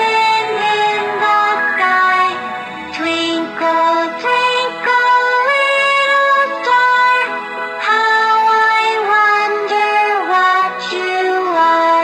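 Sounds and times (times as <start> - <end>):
person singing nursery rhyme: 0.0 - 12.0.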